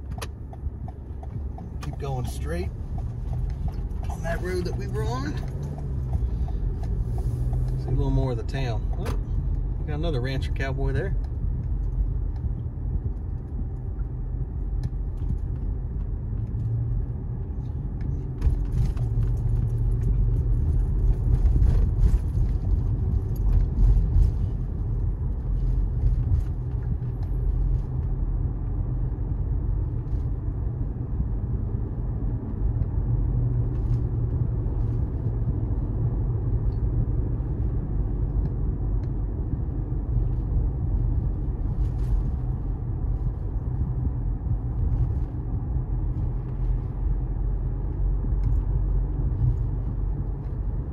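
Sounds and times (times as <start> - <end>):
tyre and engine rumble in car: 0.0 - 50.9.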